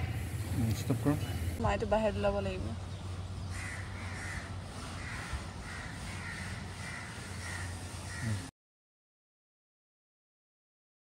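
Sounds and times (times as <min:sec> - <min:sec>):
steady low hum: 0:00.0 - 0:08.5
crow cawing: 0:03.5 - 0:08.5.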